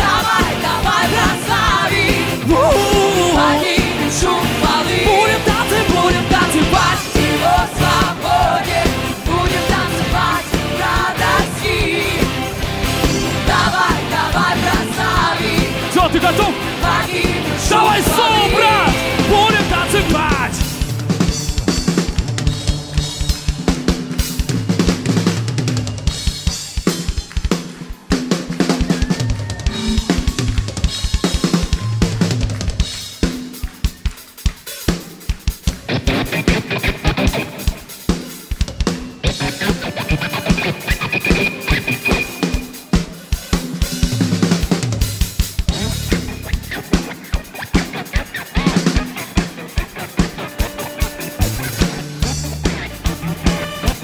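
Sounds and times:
drum kit beat: 0.0s - 54.0s
rock band playing: 0.0s - 54.0s.

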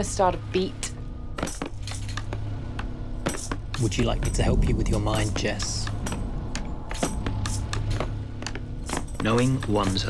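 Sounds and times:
low steady hum: 0.0s - 10.0s
clinking hand percussion strikes: 3.2s - 8.2s.

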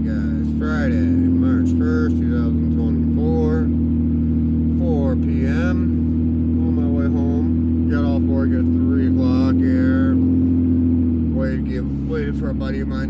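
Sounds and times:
car interior drone: 0.0s - 13.0s
person speaking: 11.3s - 13.0s.

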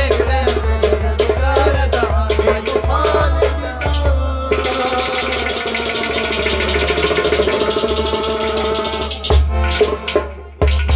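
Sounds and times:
fast percussion pulse: 0.0s - 10.9s.

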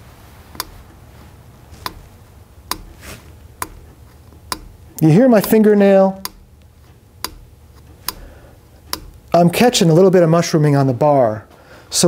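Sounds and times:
fingernail clicking on metal rail: 0.5s - 1.0s, 1.8s - 2.1s, 2.7s - 9.4s.

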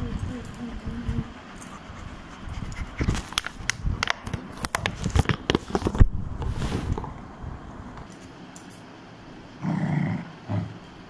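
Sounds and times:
dog growling: 9.6s - 10.9s.

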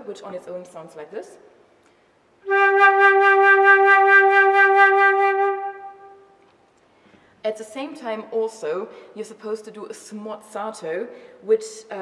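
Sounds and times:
flute note with heavy vibrato: 2.4s - 6.3s.

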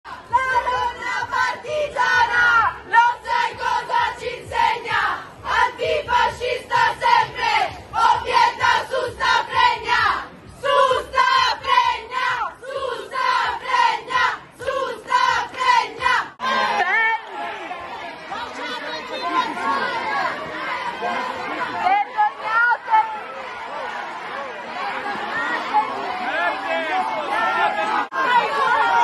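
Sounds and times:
crowd chanting: 0.0s - 29.0s
crowd shouting: 0.1s - 29.0s.

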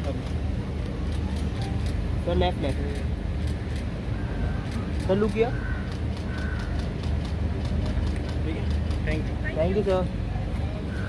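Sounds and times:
faint people talking: 6.6s - 11.0s.

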